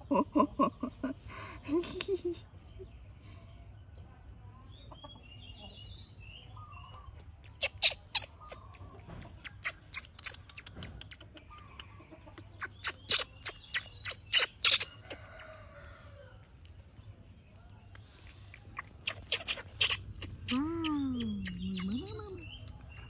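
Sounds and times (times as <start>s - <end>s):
baby monkey squealing: 7.6s - 8.8s, 9.4s - 10.8s, 12.4s - 15.2s, 18.5s - 23.0s.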